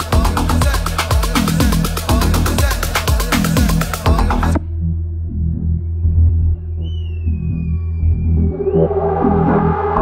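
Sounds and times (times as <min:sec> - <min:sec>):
dance music bass and kick: 0:00.0 - 0:04.8, 0:06.1 - 0:10.0
high tone gliding downward: 0:05.4 - 0:10.0.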